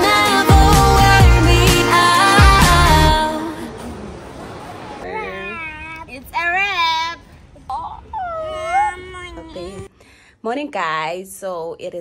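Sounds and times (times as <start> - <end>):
background music: 0.0 - 4.0.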